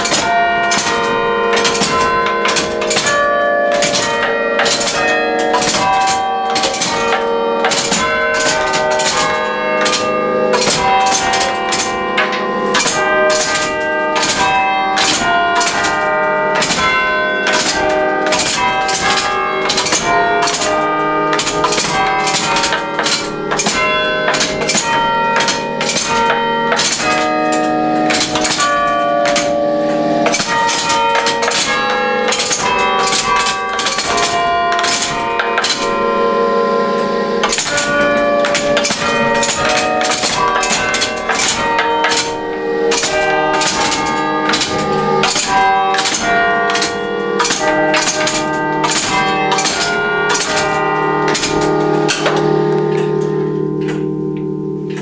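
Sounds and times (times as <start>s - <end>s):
church bells playing a tune: 0.0s - 55.0s
machine levers and hammers clacking: 0.0s - 55.0s.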